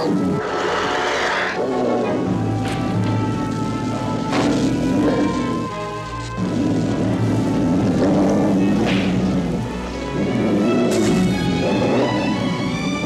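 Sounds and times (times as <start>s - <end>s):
tense cartoon background score: 0.0s - 13.0s.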